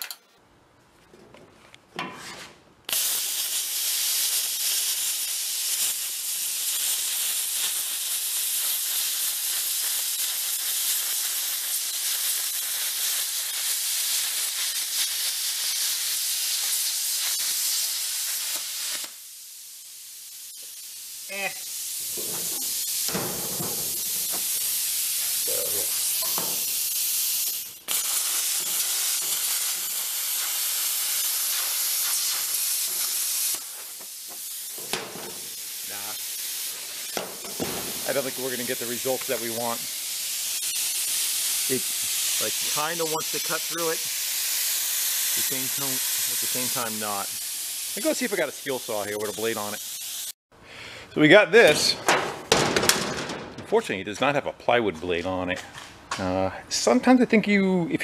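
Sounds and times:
plasma cutter hissing: 0:02.9 - 0:50.4.

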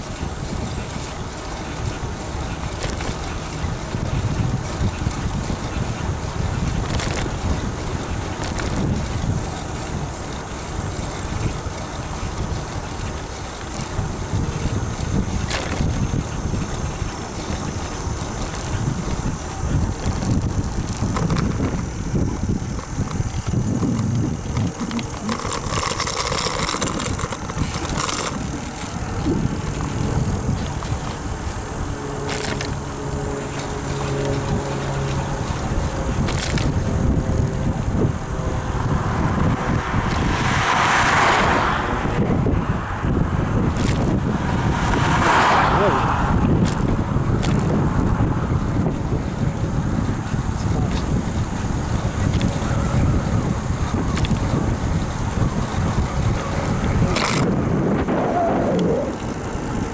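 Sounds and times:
wind rushing over microphone: 0:00.0 - 0:59.9.

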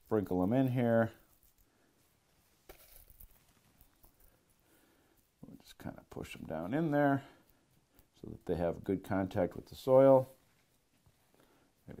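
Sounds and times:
seeds sprinkled onto soil: 0:05.1 - 0:12.0.

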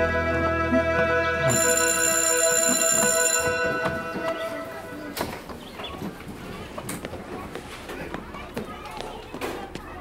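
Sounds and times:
school bell ringing: 0:01.5 - 0:05.2
faint voices: 0:01.5 - 0:10.0.

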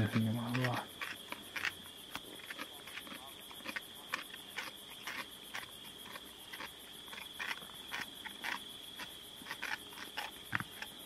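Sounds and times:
insect chorus trilling: 0:00.0 - 0:11.0
irregular clicks and cracks: 0:00.0 - 0:11.0.

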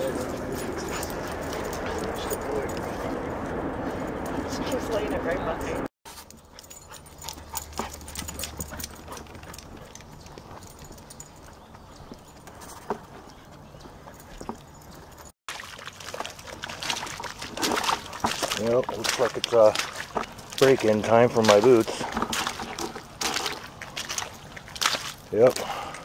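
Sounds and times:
voices: 0:00.0 - 0:03.6, 0:04.2 - 0:05.9
wind rumble on microphone: 0:00.0 - 0:05.9
footsteps on wooden boardwalk: 0:06.9 - 0:26.0.

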